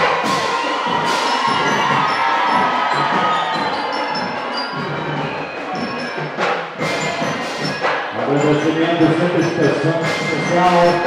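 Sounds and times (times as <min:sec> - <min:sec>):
children shouting: 0:00.0 - 0:08.3
crowd cheering: 0:00.0 - 0:11.0
marching percussion band: 0:00.0 - 0:11.0.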